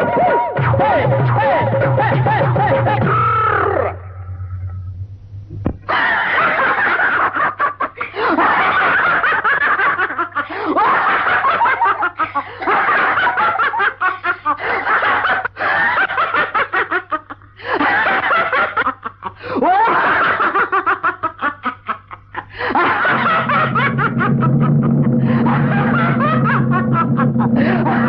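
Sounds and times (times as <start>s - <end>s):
man laughing loudly: 0.0s - 4.1s, 5.9s - 28.0s
steady low hum: 0.6s - 28.0s.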